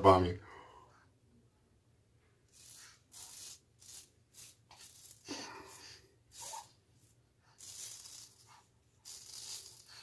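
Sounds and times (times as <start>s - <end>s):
razor scraping stubble: 2.5s - 6.8s, 7.6s - 10.0s.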